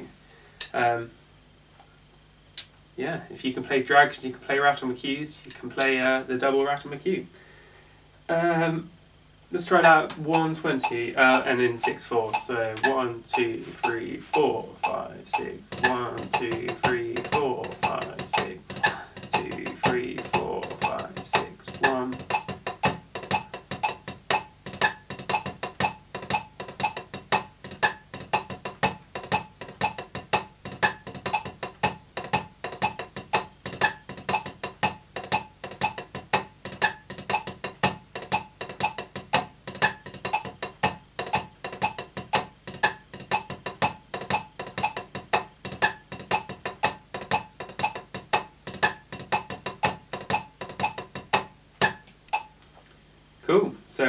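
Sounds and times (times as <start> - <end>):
drumsticks on practice pad: 9.6 - 52.7
metronome clicking: 9.6 - 52.7.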